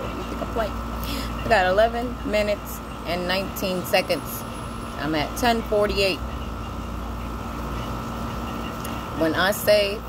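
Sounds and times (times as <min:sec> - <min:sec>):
faint constant tone: 0:00.0 - 0:10.0
low machine hum: 0:00.0 - 0:10.0.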